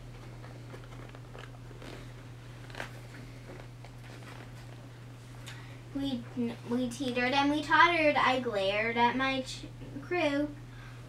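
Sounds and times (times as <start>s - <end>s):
steady low hum: 0.0s - 11.0s
paper pages rustling: 0.1s - 4.8s.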